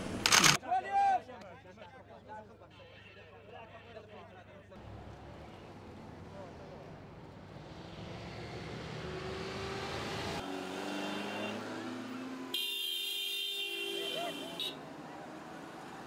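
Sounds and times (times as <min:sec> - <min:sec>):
road traffic rumbling: 0:00.0 - 0:00.6, 0:04.8 - 0:16.0
faint street sound: 0:00.0 - 0:16.0
car horns blasting: 0:10.8 - 0:11.8, 0:12.4 - 0:14.8.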